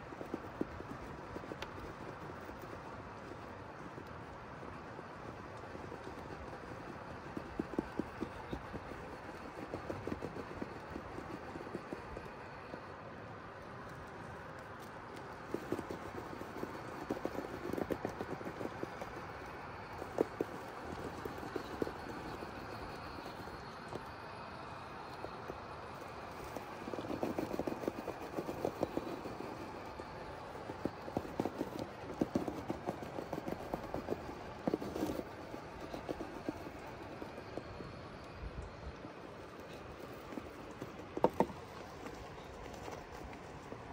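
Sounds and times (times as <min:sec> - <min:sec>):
tires scraping over stone: 0:00.0 - 0:43.9.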